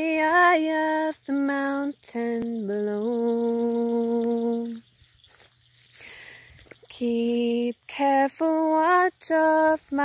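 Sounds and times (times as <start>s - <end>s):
faint outdoor background: 0.0s - 10.0s
soft breath intake: 5.9s - 6.7s.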